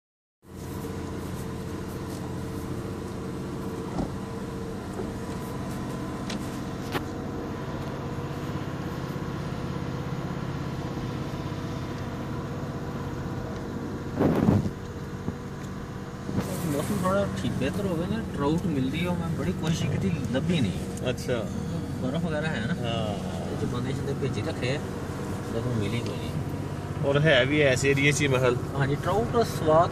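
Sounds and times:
vehicle engine hum and road noise: 0.4s - 29.9s.

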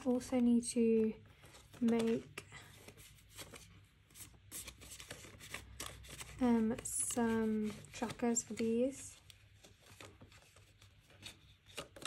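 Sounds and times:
paper and plastic sleeves rustling: 0.0s - 12.0s.

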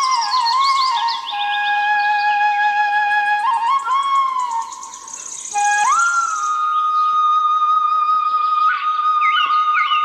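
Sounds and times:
bamboo flute melody: 0.0s - 10.0s.

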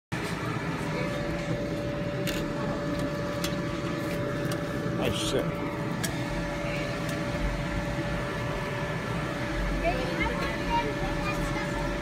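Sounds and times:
steady mechanical hum: 0.1s - 12.0s.

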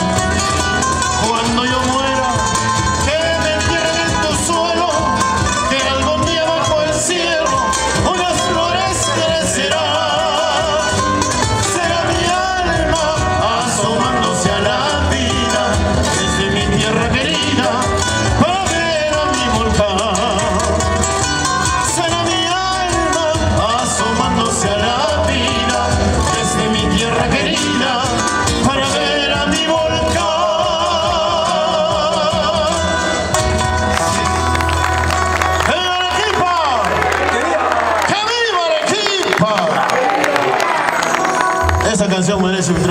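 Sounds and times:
man's voice: 0.0s - 34.5s, 35.4s - 40.6s, 41.4s - 42.9s
strummed acoustic guitars: 0.0s - 39.8s
bass: 0.0s - 42.9s.

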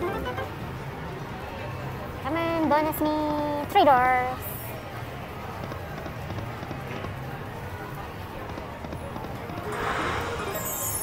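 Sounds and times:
murmur of distant voices: 0.0s - 11.0s.

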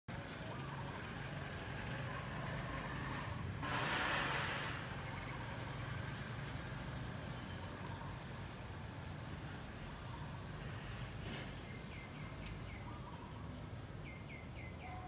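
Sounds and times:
low engine hum: 0.1s - 15.0s.

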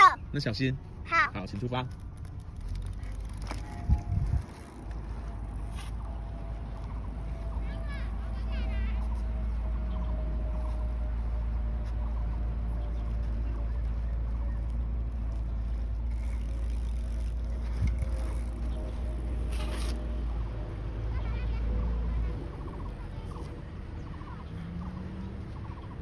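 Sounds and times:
wind buffeting microphone: 2.7s - 8.2s, 16.0s - 19.4s.

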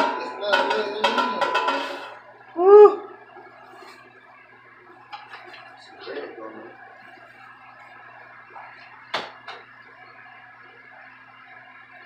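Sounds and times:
short rising and falling cry: 2.6s - 3.3s.

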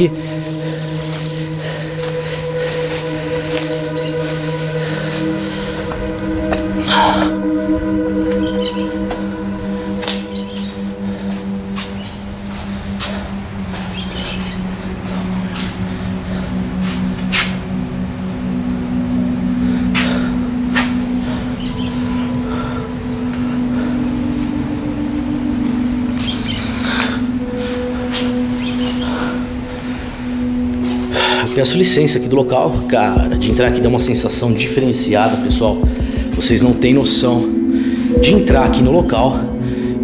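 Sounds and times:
birds chirping: 0.0s - 40.0s
music of long held low notes: 0.0s - 40.0s.

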